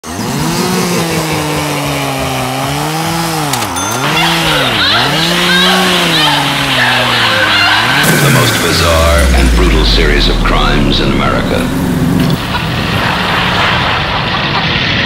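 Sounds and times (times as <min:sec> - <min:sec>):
chainsaw engine revving: 0:00.0 - 0:13.0
high wavering sound: 0:07.8 - 0:12.8.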